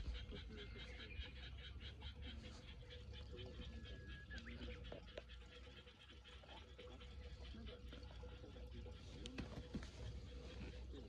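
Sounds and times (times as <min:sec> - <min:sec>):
pulsing animal calls chorus: 0:00.0 - 0:11.0.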